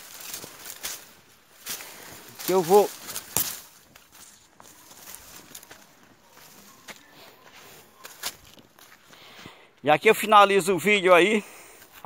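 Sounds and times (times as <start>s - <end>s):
rustle of dry plants: 0.0s - 10.4s
footsteps on dry ground: 0.0s - 12.0s.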